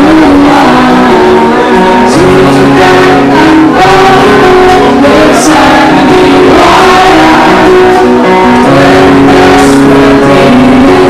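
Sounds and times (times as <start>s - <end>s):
acoustic guitar music: 0.0s - 11.0s
audience singing along: 0.0s - 11.0s.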